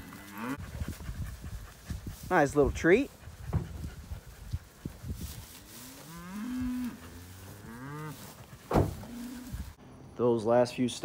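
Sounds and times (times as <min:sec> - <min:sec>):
cattle mooing: 0:00.0 - 0:00.6, 0:05.8 - 0:09.6.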